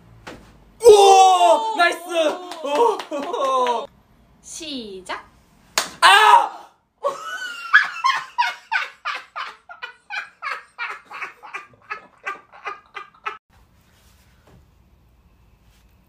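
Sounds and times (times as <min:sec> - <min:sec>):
loud cry: 0:00.8 - 0:03.9, 0:06.0 - 0:06.8
woman laughing hard: 0:07.0 - 0:13.4.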